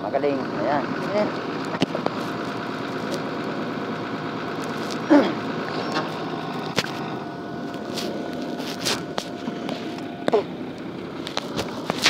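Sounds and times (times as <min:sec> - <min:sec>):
truck engine idling: 0:00.0 - 0:12.0.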